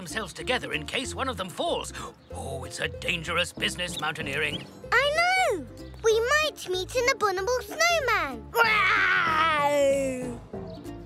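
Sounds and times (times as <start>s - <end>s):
light background music: 0.0s - 11.0s
cartoon child wailing: 8.6s - 9.8s.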